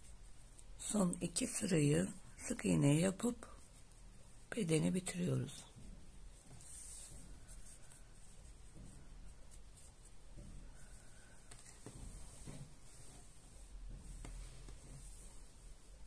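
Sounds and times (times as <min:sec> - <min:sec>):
crochet hook scratching yarn: 0:00.0 - 0:16.0
fabric rustling and tapping: 0:05.3 - 0:16.0.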